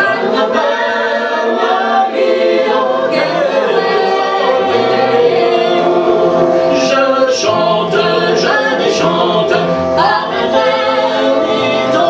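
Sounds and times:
bowed string drone: 0:00.0 - 0:12.0.

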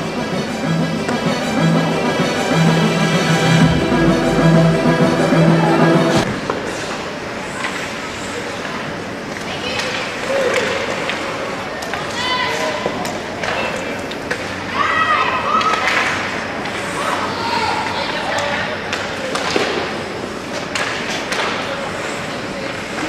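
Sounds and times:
background music: 0:00.0 - 0:06.3.

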